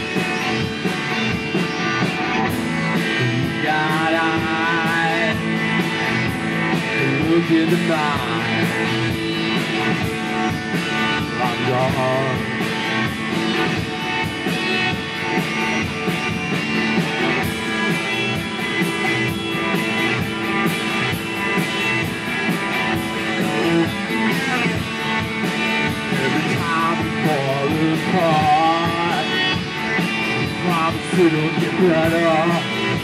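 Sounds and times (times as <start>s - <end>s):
drum kit: 0.0s - 33.0s
electric guitars: 0.0s - 33.0s.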